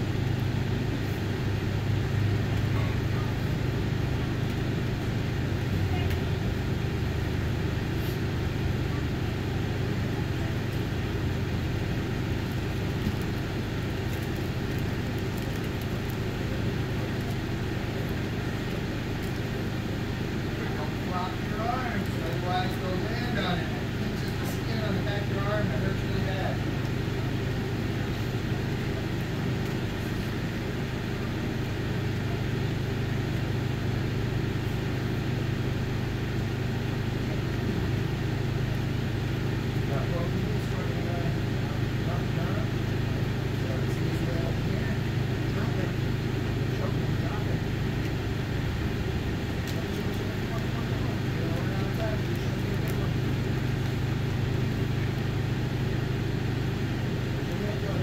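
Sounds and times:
steady low hum: 0:00.0 - 0:58.0.

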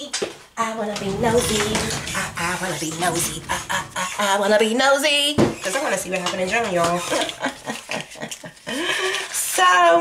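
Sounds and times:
woman laughing: 0:07.1 - 0:09.2.

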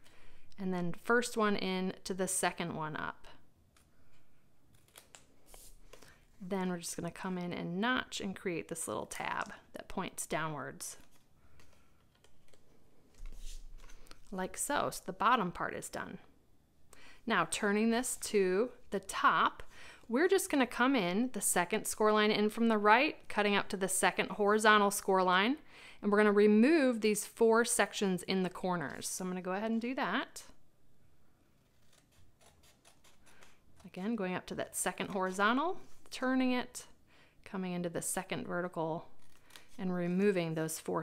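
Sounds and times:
small scissors snipping cardstock: 0:31.8 - 0:33.9.

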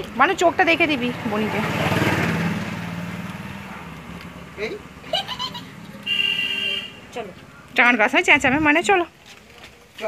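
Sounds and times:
vehicle engine passing: 0:00.0 - 0:07.7.

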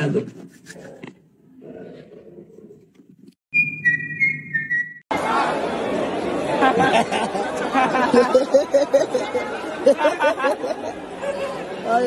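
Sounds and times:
high whistled notes: 0:03.5 - 0:05.1
crowd chatter: 0:05.1 - 0:12.0
laughter: 0:06.4 - 0:11.1.

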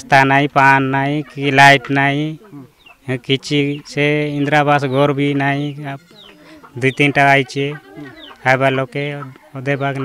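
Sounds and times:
chickens clucking faintly: 0:00.0 - 0:10.0
man speaking: 0:00.0 - 0:10.0.

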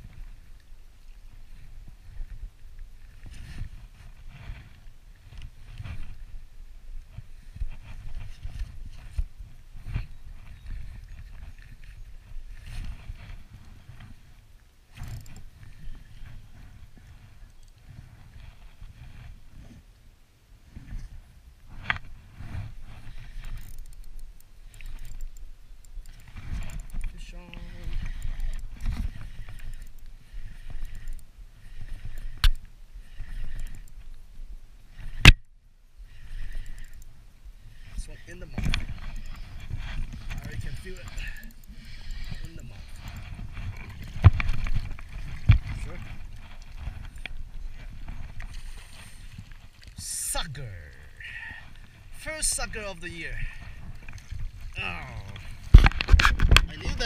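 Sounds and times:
wind and handling rumble: 0:00.0 - 0:57.0.

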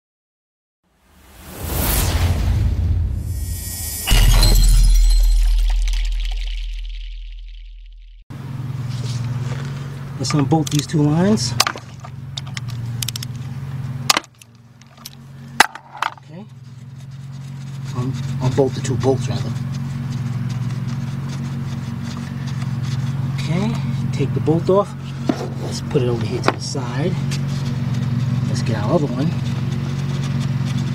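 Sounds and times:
whoosh: 0:00.9 - 0:08.2
deep bass boom: 0:01.4 - 0:08.2
steady low hum: 0:02.9 - 0:30.9
glassy shatter impact: 0:03.3 - 0:08.0.

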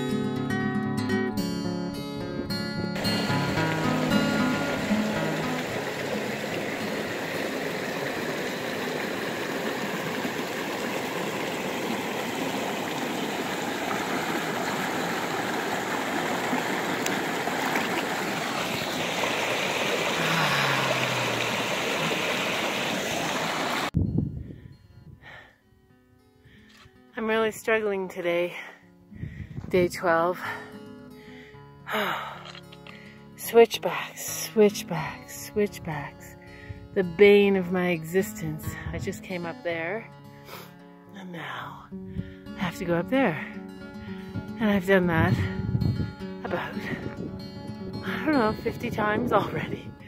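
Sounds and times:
guitar music: 0:00.0 - 0:09.2, 0:24.0 - 0:50.0
stream water rushing: 0:03.0 - 0:24.0.

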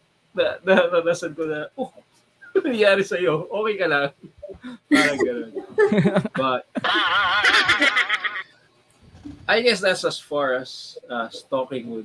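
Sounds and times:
person laughing high-pitched: 0:04.4 - 0:08.4.

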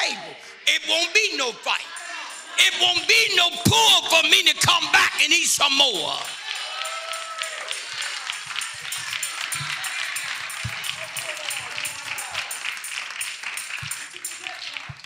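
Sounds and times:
congregation clapping: 0:05.8 - 0:15.0
music: 0:06.0 - 0:15.0.

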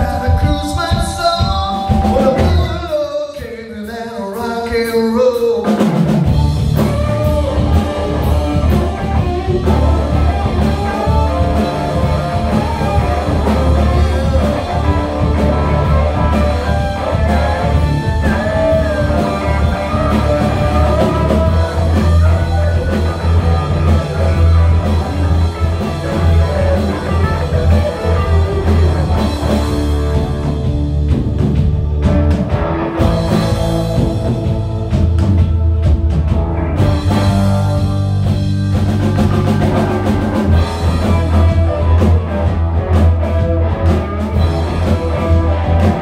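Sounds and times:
live rock band playing loudly: 0:00.0 - 0:46.0.

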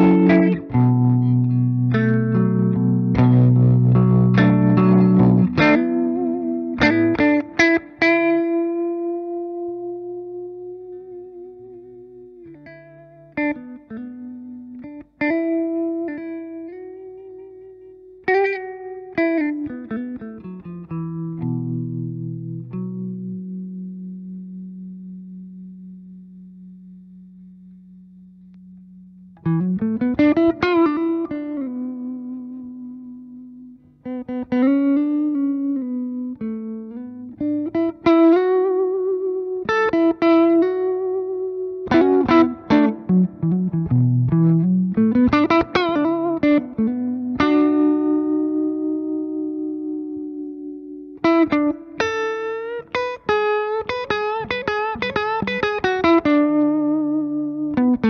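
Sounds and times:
electric guitar lead phrases: 0:00.0 - 0:58.0.

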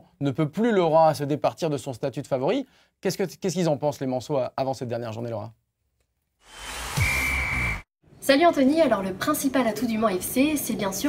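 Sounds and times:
swelling whoosh: 0:06.4 - 0:07.8
steady high beep: 0:06.8 - 0:07.8.

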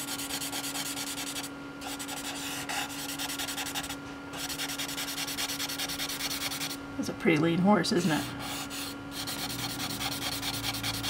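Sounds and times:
charcoal scratching on paper: 0:00.0 - 0:06.8, 0:08.2 - 0:11.0
steady low hum: 0:00.0 - 0:11.0.

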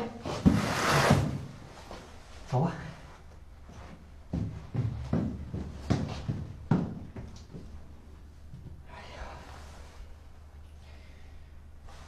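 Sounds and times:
footsteps on stairs: 0:03.6 - 0:08.8.

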